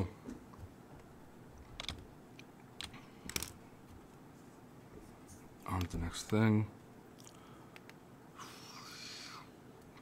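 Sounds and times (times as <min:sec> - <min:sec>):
keyboard and mouse clicks: 0:01.6 - 0:03.6.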